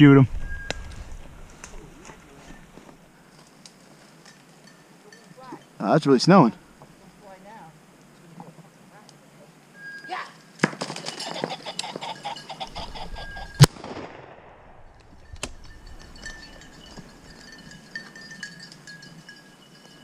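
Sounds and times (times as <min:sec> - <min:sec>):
shotgun shot: 0:13.6 - 0:14.8.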